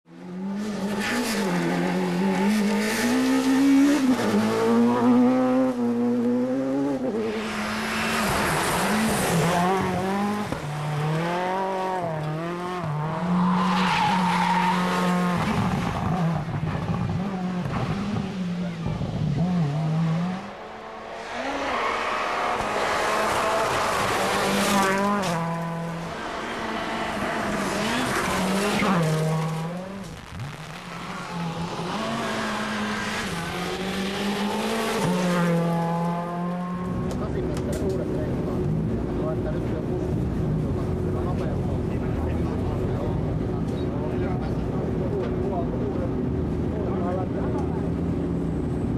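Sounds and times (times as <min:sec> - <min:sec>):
gravel and tyre noise: 0:00.0 - 0:48.9
rally car engines revving: 0:00.1 - 0:48.9.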